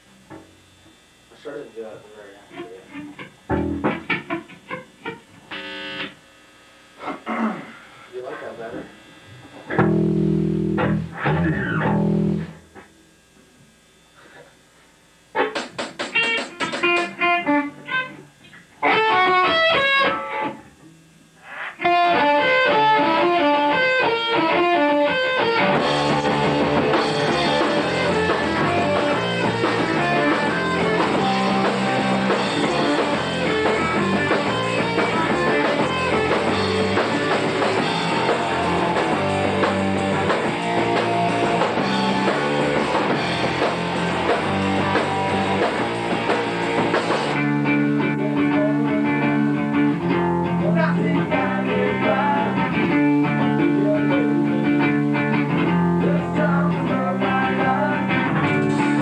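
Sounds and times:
distorted electric guitars: 0.0 - 59.0
electric guitars strumming: 0.0 - 59.0
drum kit: 2.5 - 4.7, 6.9 - 13.0, 15.3 - 20.6, 21.4 - 59.0.

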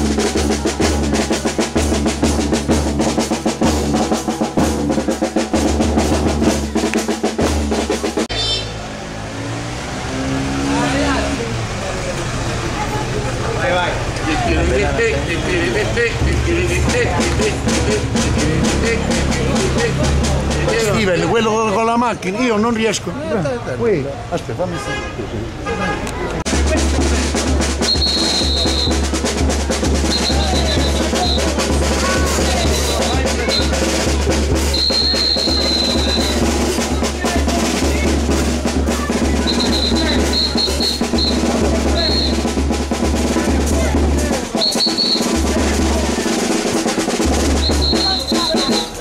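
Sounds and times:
drum roll: 0.0 - 8.3, 14.0 - 22.0, 26.4 - 49.0
high tone in short blasts: 34.7 - 36.4, 44.6 - 45.4.

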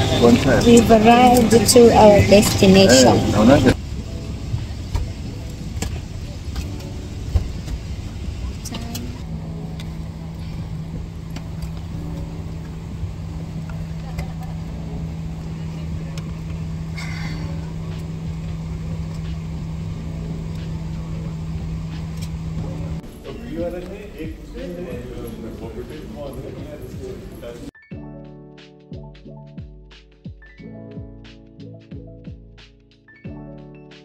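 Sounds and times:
airliner cabin low rumble: 0.0 - 27.7
steady low hum: 0.0 - 27.7.

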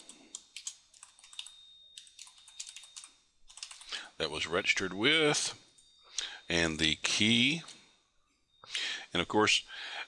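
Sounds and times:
typing on a computer keyboard: 0.0 - 4.0.

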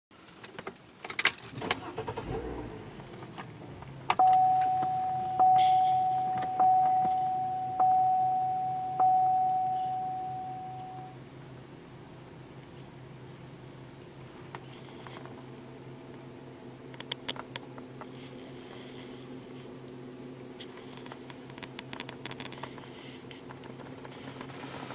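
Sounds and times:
car cabin hum: 1.6 - 24.9
dashboard warning chime: 4.2 - 11.2.

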